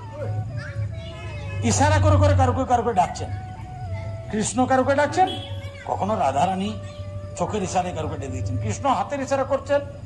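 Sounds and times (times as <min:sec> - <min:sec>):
man speaking: 0:01.6 - 0:03.3.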